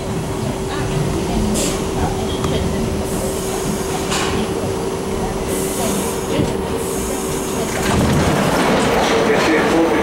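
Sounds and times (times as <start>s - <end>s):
wheel and track rumble: 0.0s - 10.0s.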